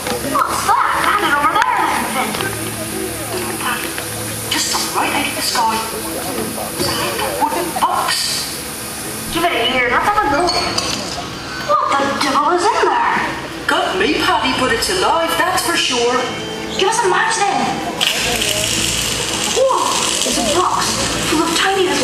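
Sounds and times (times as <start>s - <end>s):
music: 0.0s - 22.0s.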